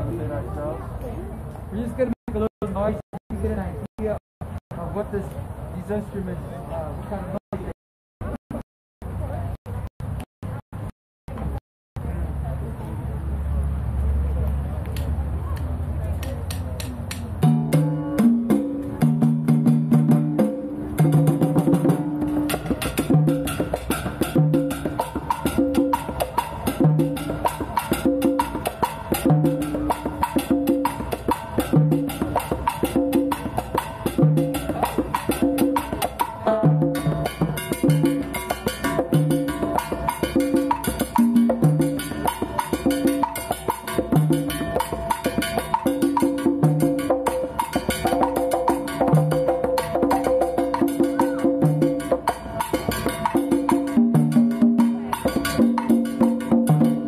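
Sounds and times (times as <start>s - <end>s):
hand drums in latin rhythm: 16.4s - 57.0s.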